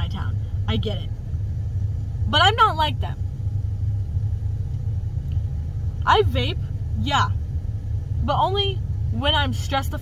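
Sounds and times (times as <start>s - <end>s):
car cabin low rumble: 0.0s - 10.0s.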